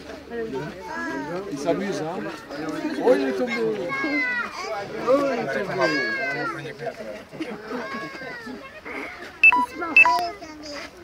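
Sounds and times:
overlapping visitor chatter: 0:00.0 - 0:11.0.

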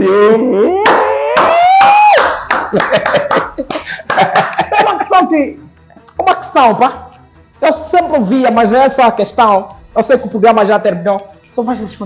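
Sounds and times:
man laughing: 0:02.5 - 0:05.4.

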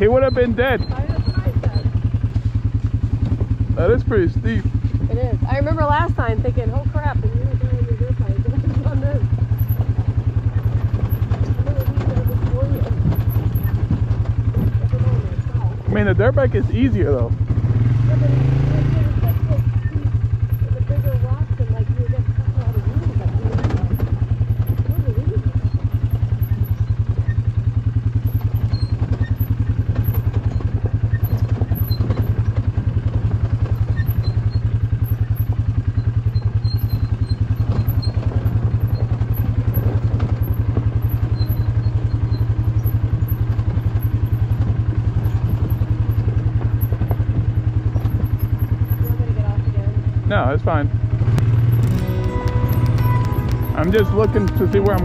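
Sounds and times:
quad bike engine running: 0:00.0 - 0:55.0.

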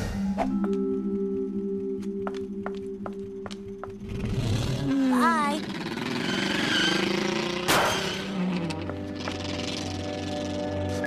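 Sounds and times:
cartoon car engine revving: 0:04.0 - 0:10.8.

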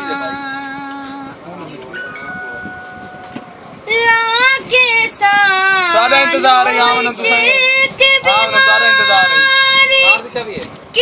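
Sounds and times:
girl singing folk song: 0:00.0 - 0:01.4, 0:03.8 - 0:10.2.

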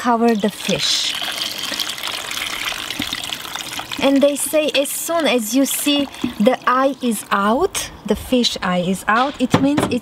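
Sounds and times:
water pouring into a pot: 0:00.0 - 0:07.6.

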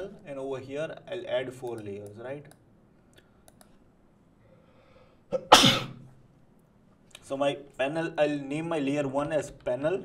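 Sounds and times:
sharp intake of breath: 0:04.4 - 0:05.3
man sneezing loudly: 0:05.3 - 0:06.0.

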